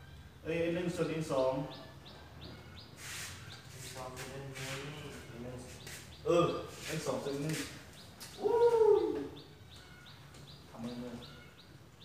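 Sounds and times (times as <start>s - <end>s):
faint high chirps: 8.3s - 12.0s.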